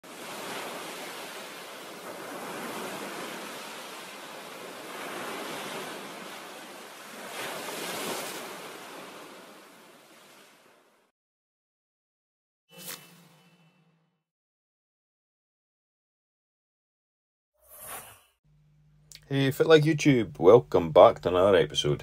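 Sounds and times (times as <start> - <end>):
ocean waves washing in: 0.0 - 11.1.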